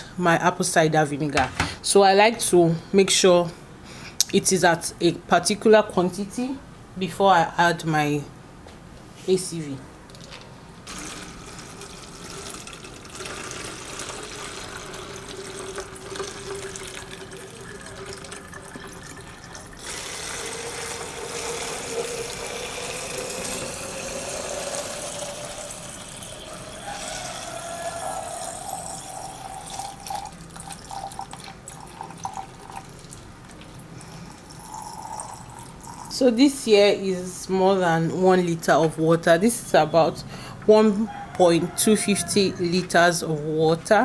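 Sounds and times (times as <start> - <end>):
water pouring into plastic bottle: 10.8 - 36.1.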